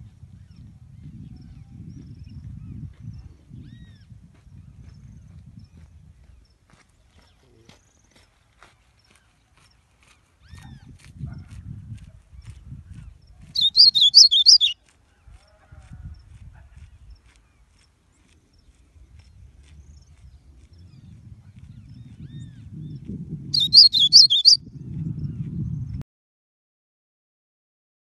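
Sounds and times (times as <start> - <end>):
faint bird chirps: 13.6 - 14.8, 23.6 - 24.6
finch singing: 13.6 - 14.8, 23.6 - 24.6.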